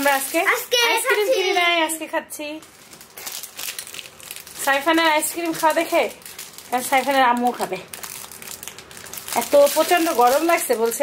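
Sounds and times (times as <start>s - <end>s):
plastic wrapper crinkling: 0.0s - 11.0s
child's voice: 0.4s - 1.9s.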